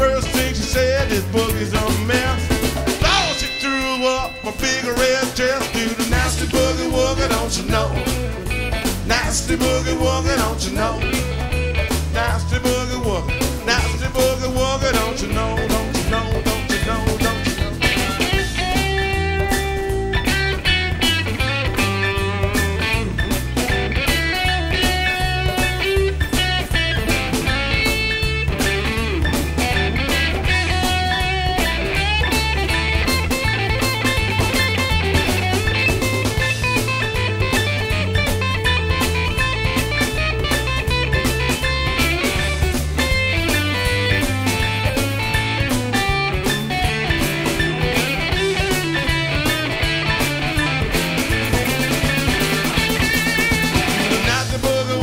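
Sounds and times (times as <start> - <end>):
drums keeping steady beat: 0.0 - 55.0
electric guitar: 0.0 - 55.0
stepping bass line: 0.0 - 55.0.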